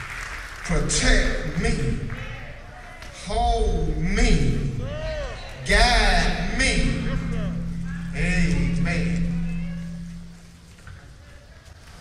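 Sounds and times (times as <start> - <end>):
low hum: 5.6 - 11.2.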